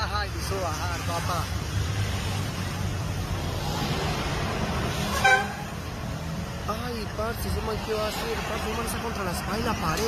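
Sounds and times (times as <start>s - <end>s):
street traffic rumble: 0.0s - 10.0s
vehicle horn beep: 5.1s - 5.7s.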